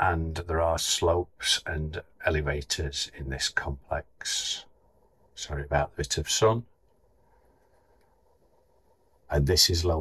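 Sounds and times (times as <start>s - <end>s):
person speaking: 0.0s - 4.7s, 5.4s - 6.7s, 9.3s - 10.0s.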